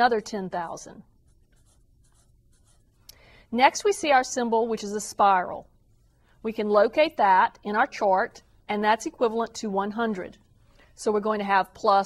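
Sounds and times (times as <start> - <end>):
felt-tip marker writing on paper: 1.2 - 3.0.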